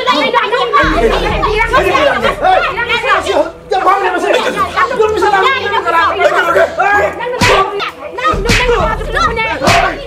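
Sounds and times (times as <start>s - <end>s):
people arguing: 0.0s - 10.0s.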